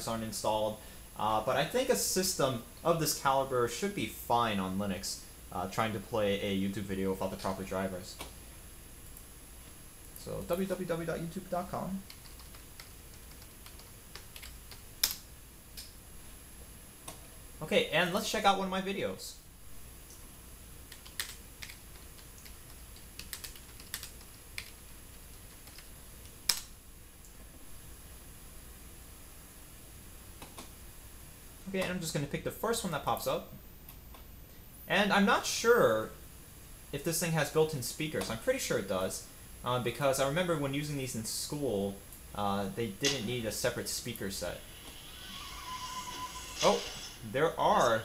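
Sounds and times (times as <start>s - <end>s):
video ad audio through small speaker: 17.6s - 19.5s, 34.9s - 36.2s, 36.9s - 48.0s
computer keyboard key clicks: 20.9s - 24.8s.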